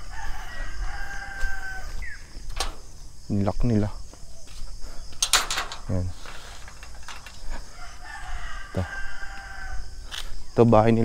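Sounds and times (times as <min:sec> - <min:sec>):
rooster crowing: 0:00.0 - 0:02.4, 0:06.8 - 0:10.2
metal gate latch clanking: 0:02.4 - 0:03.1, 0:05.2 - 0:07.7.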